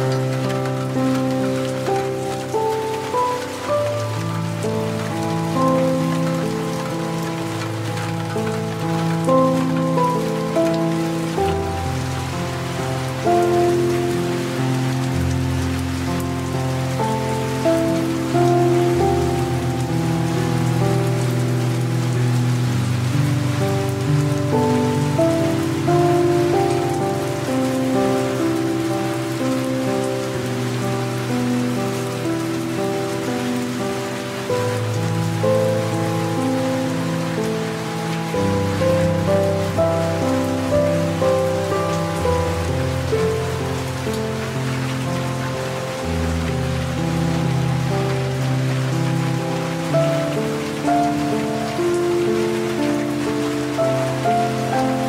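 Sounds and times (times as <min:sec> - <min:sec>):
light rain: 0:00.0 - 0:55.0
soft slow piano music: 0:00.0 - 0:55.0.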